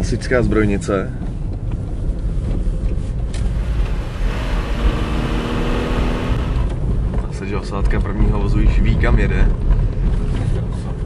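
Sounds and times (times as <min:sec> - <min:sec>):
car engine rumble: 0:00.0 - 0:11.0
road noise: 0:00.1 - 0:11.0
windscreen washer spraying: 0:03.1 - 0:07.1.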